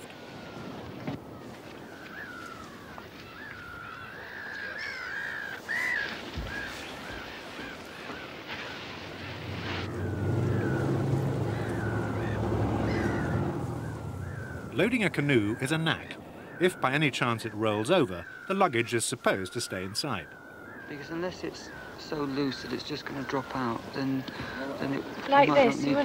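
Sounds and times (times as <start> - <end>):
birds chirping: 0.6 - 26.0
boat engine hum: 7.2 - 16.8.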